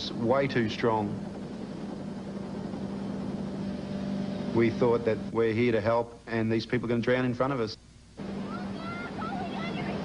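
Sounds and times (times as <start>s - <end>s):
motorboat engine drone: 0.0s - 5.9s, 8.0s - 10.0s
wind and sea hiss: 0.0s - 10.0s.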